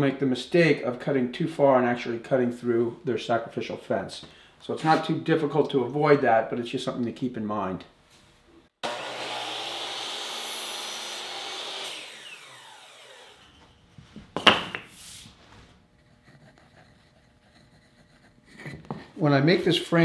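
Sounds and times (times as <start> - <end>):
miter saw cutting wood: 8.8 - 13.8.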